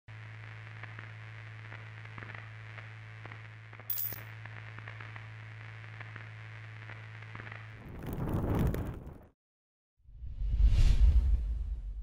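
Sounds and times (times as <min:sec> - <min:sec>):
low electrical hum: 0:00.1 - 0:07.8
faint crackles: 0:00.1 - 0:09.3.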